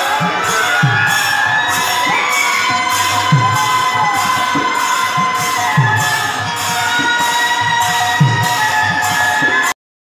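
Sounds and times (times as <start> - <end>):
hand cymbals clashing: 0.0 - 9.7
group of voices chanting: 0.0 - 9.8.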